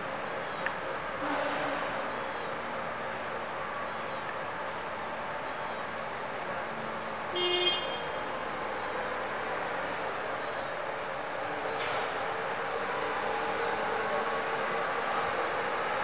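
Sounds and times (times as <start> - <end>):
steady background noise: 0.0 - 16.0
forklift horn toot: 7.3 - 8.2.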